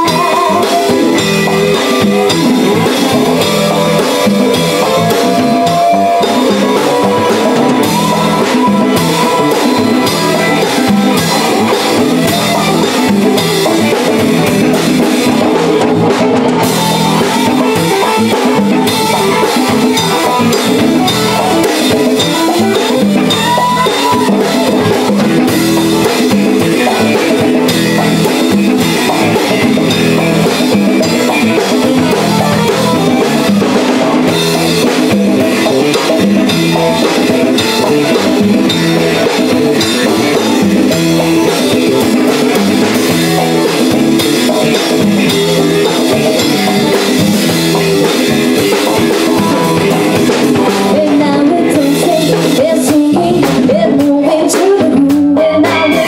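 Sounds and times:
drum kit beat: 0.0 - 56.0
electric bass: 0.0 - 56.0
keyboard playing: 0.0 - 56.0.

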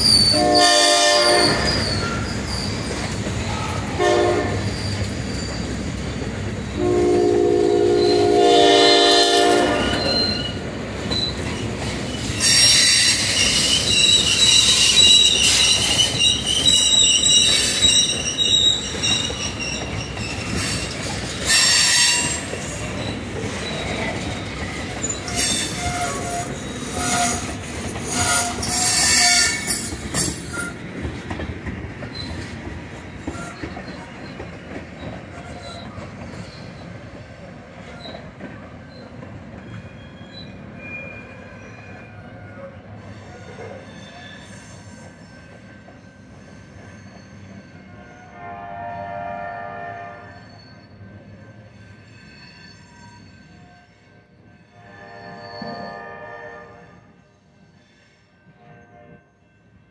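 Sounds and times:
freight train rumbling past: 0.0 - 59.9
train wheels squealing on rails: 0.0 - 59.9
train horn chord: 0.4 - 1.6, 4.0 - 4.6, 6.8 - 9.9, 48.3 - 50.4, 54.7 - 57.2, 58.5 - 59.4.

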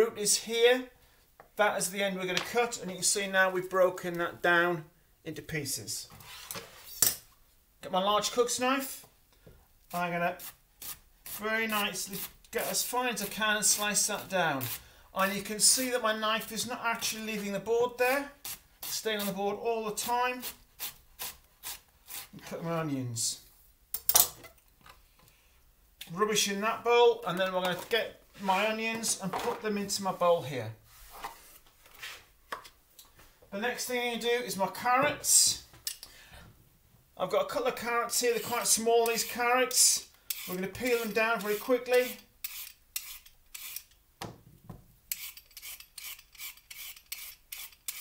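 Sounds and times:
peeler scraping a carrot: 10.4 - 11.4, 12.0 - 14.8, 40.3 - 44.0, 45.1 - 48.0.

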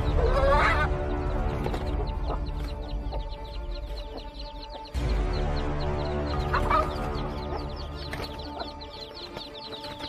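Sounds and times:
hen squawk: 0.0 - 1.1
background music with low bass: 0.0 - 10.0
chicks peeping: 0.0 - 10.0.

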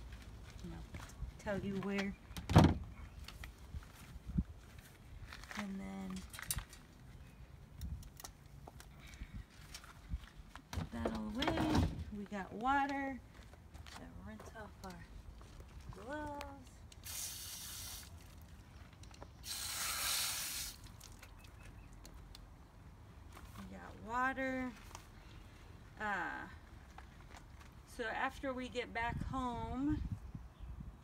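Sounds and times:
wind rumble on microphone: 2.6 - 5.4, 29.0 - 31.0.

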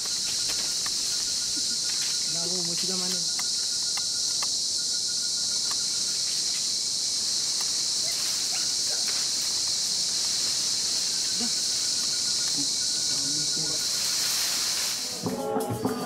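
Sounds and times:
insect chorus drone: 0.0 - 16.0.

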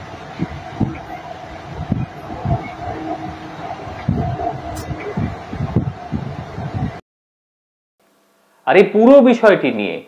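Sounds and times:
low rumbling thumps: 0.0 - 7.0
metro train humming in tunnel: 0.0 - 7.0.

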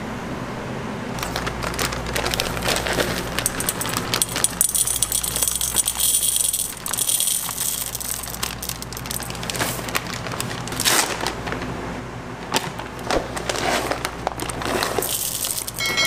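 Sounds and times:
chocolate pieces rattling into glass bowl: 1.2 - 10.8, 13.9 - 16.0.

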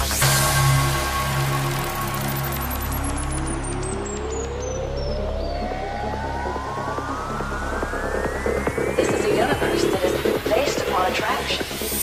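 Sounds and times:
held synth bass: 0.0 - 12.0
synth riser climbing in pitch: 0.0 - 12.0.

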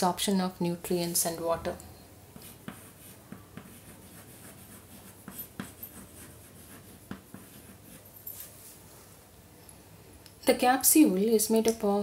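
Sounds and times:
chalk scratching on blackboard: 2.4 - 8.0.

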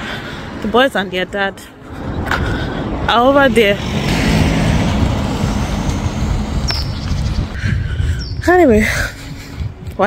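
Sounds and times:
wind rumble on microphone: 1.9 - 10.0
car driving by: 2.0 - 6.6.

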